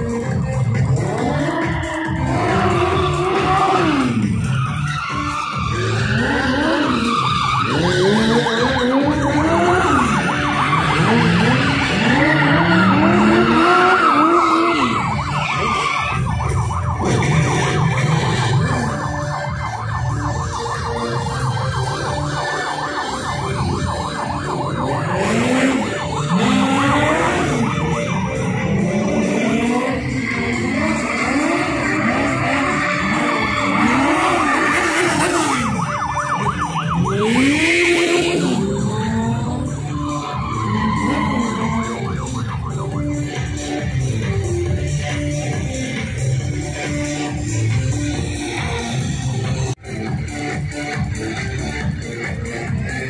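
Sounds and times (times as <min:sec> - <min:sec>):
car engines revving: 0:00.0 - 0:53.0
siren wailing: 0:00.0 - 0:53.0
tyres skidding: 0:00.0 - 0:53.0.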